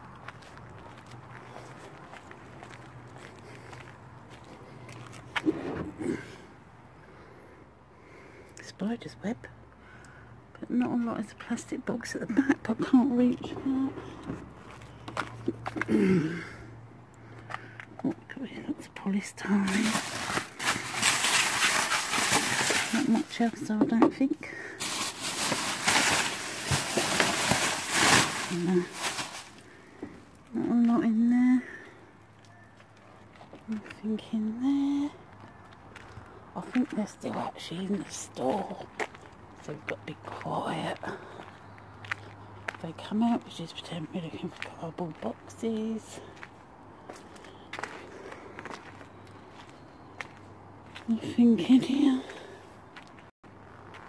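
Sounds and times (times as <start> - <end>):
faint footsteps: 0.0 - 5.9, 13.4 - 15.9, 19.6 - 30.9
plastic bags and bubble wrap crinkling: 19.5 - 29.9.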